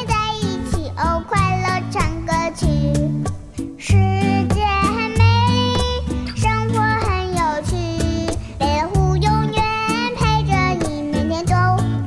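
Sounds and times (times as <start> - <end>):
cheerful backing track: 0.0 - 12.0
child singing: 0.0 - 12.0.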